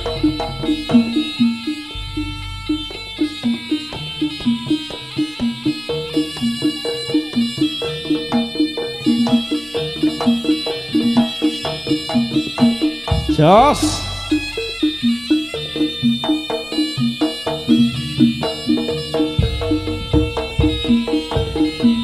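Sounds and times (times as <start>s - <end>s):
gamelan percussion: 0.0s - 22.0s
hand drum strokes: 0.0s - 22.0s.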